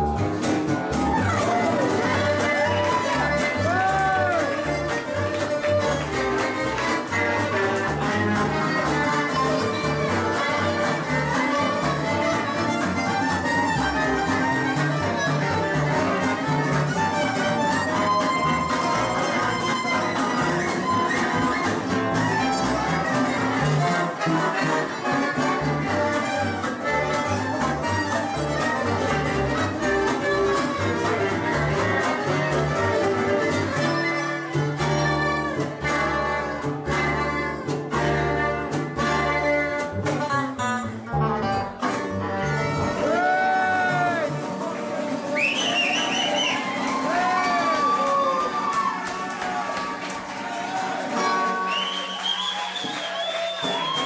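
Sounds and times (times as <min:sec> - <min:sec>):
plucked double bass: 0:00.0 - 0:47.1
acoustic rhythm guitars: 0:00.0 - 0:54.0
violin playing lead: 0:01.0 - 0:45.0.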